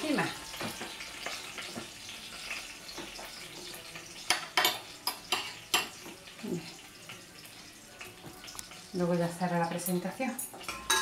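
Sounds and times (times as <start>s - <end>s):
juices trickling onto food: 0.0s - 11.0s
metal utensils clinking on plate: 2.5s - 6.2s, 10.4s - 11.0s.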